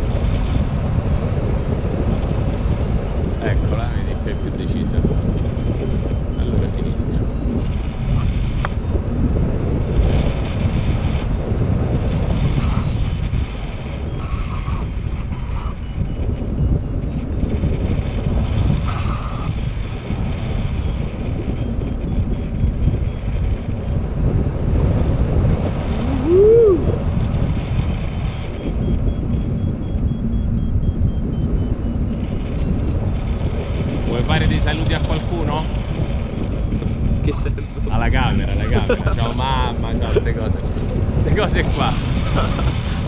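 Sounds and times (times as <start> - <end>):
wind buffeting microphone: 0.0 - 43.0
rising and falling tone: 26.0 - 27.0.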